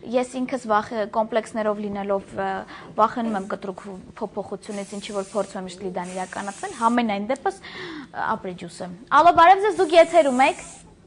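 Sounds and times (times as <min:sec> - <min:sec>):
woman speaking: 0:00.0 - 0:10.8
aerosol spray can hiss: 0:04.7 - 0:07.0, 0:09.6 - 0:10.9.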